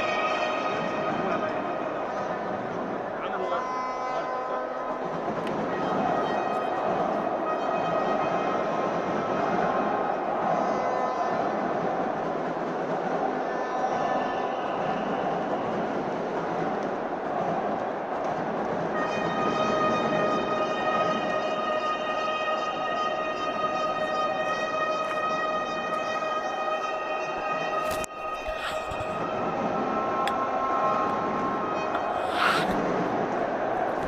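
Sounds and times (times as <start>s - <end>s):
arena crowd din: 0.0s - 34.0s.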